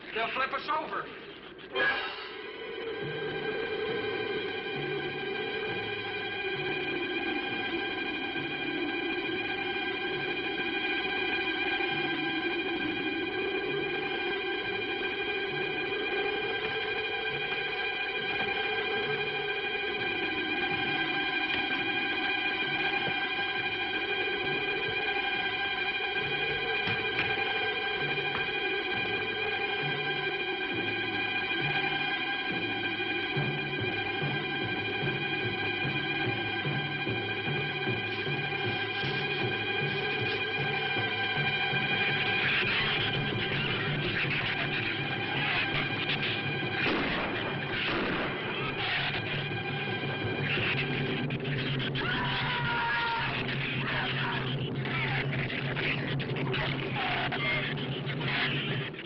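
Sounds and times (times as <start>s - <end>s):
suspense film score: 0.0s - 59.0s.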